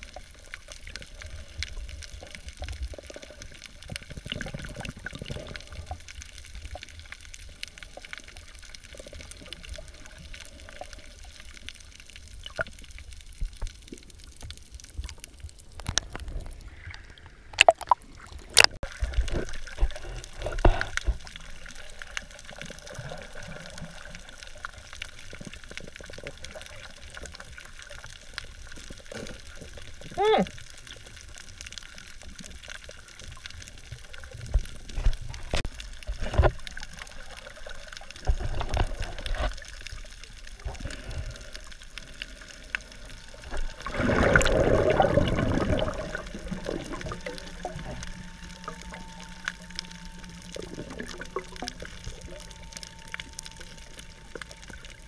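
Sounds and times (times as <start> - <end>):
muffled underwater sloshing: 0.0 - 55.0.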